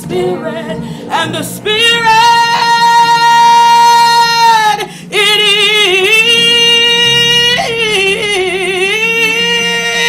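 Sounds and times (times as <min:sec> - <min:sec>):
gospel choir singing: 0:00.0 - 0:10.0.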